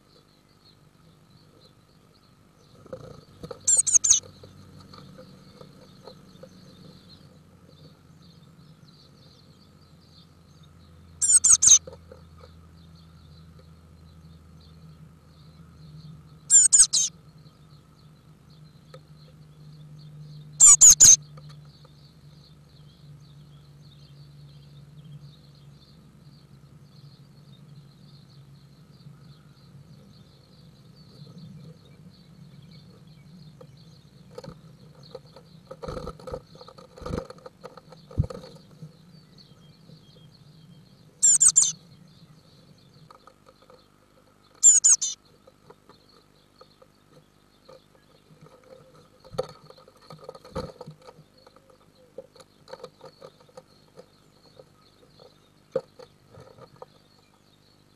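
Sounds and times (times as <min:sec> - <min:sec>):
nestlings cheeping: 0:03.7 - 0:04.2, 0:11.2 - 0:11.8, 0:16.5 - 0:17.1, 0:20.6 - 0:21.2, 0:41.2 - 0:41.8, 0:44.6 - 0:45.2.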